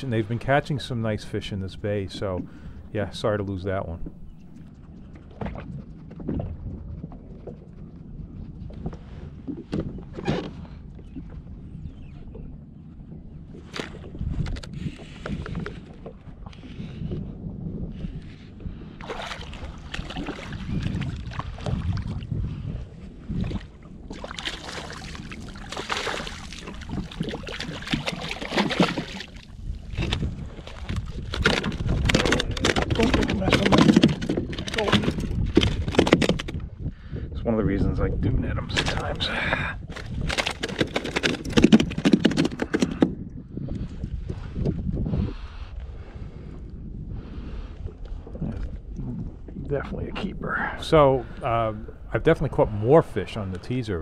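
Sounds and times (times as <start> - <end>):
water splashing: 0.0 - 5.6, 19.0 - 22.2, 24.1 - 29.6.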